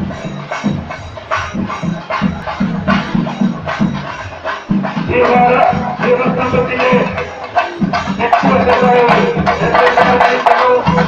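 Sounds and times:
cymbals: 0:00.0 - 0:11.0
drums beating fast rhythm: 0:00.0 - 0:11.0.

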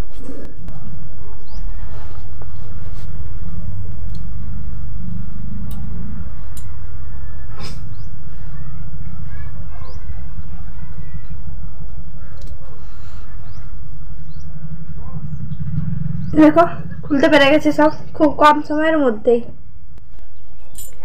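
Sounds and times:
low rumble on microphone: 0:00.0 - 0:21.0.

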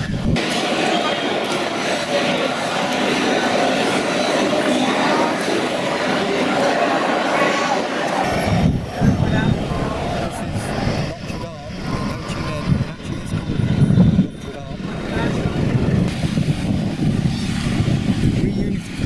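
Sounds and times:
people's voices: 0:00.0 - 0:19.0
traffic rumble: 0:00.0 - 0:19.0.

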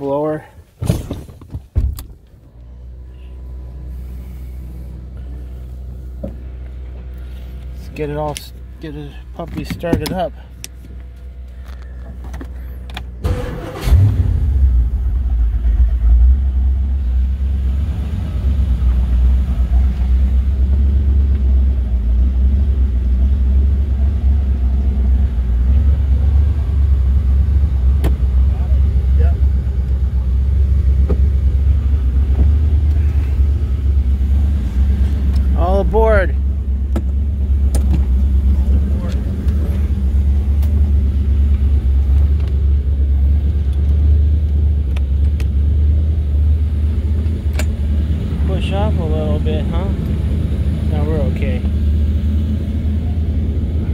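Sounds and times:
boat engine idling: 0:02.3 - 0:13.9, 0:14.8 - 0:53.9
boat engine starter cranking: 0:13.2 - 0:14.2.

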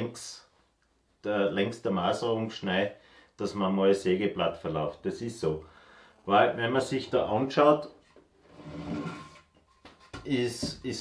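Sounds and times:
wooden board scraping: 0:08.0 - 0:10.3.

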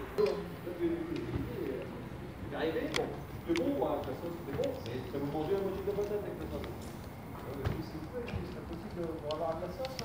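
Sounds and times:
faint street background: 0:00.0 - 0:10.0.

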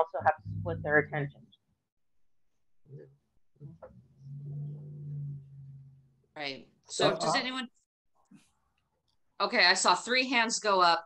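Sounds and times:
person humming on one low pitch: 0:03.6 - 0:06.0.

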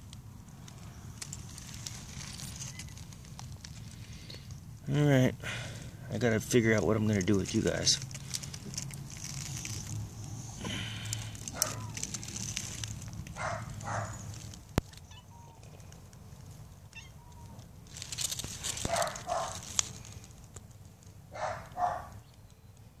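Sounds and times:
cat meowing: 0:11.5 - 0:12.2, 0:14.9 - 0:15.8, 0:16.9 - 0:17.6.

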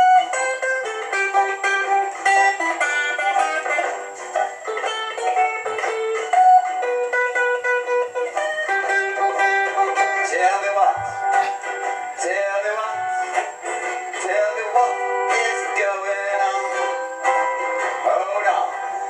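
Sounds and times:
guitar strumming: 0:00.0 - 0:19.0
man singing: 0:09.7 - 0:19.0.

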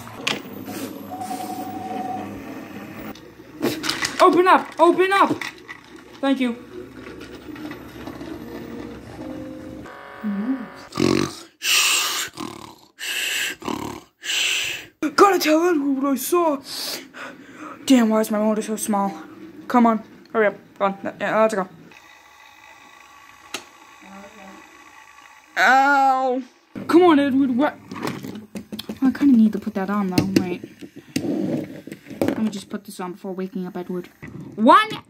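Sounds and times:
toy train motor and gears: 0:00.0 - 0:10.5, 0:21.3 - 0:35.0.

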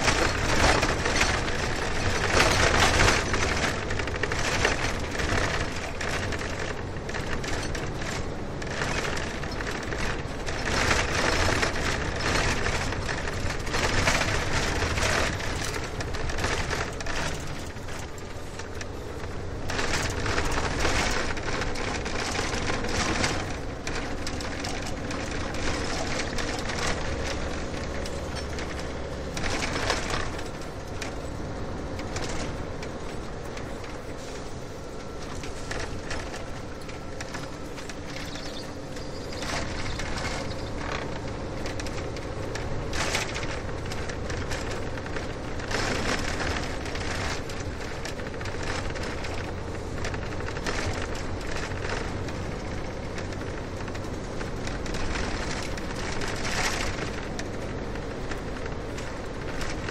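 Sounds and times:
rattling and clicking in car: 0:00.0 - 0:59.9
road rumble: 0:00.0 - 0:59.9.

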